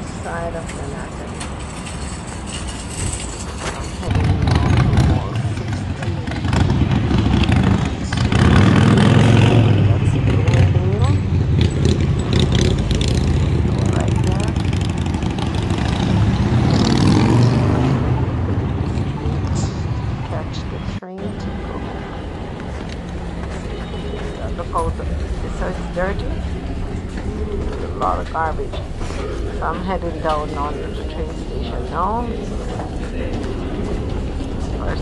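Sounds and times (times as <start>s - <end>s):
vehicle engines passing: 0.0s - 35.0s
engine revving pulling away: 4.0s - 19.6s.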